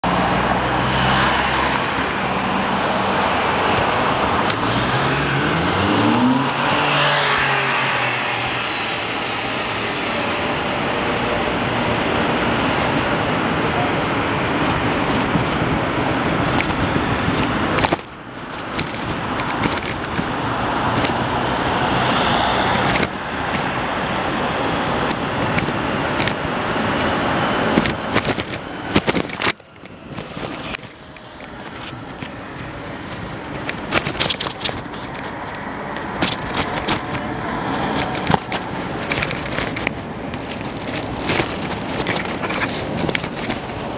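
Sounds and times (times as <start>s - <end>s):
road and traffic noise: 0.0s - 43.9s
vehicle engine accelerating: 0.0s - 43.9s
knocks and clicks: 16.4s - 21.3s, 27.7s - 43.9s.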